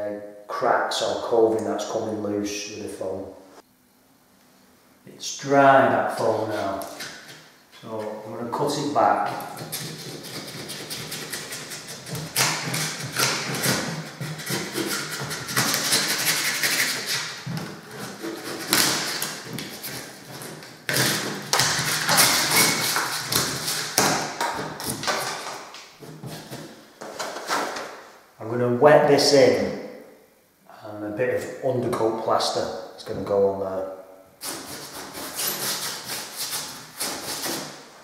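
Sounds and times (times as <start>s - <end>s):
metal scraper scraping foam: 6.2s - 27.8s, 34.4s - 37.9s.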